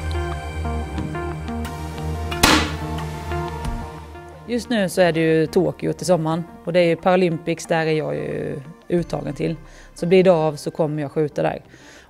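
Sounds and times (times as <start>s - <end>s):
background music: 0.0s - 12.0s
air rifle shot: 2.4s - 3.0s.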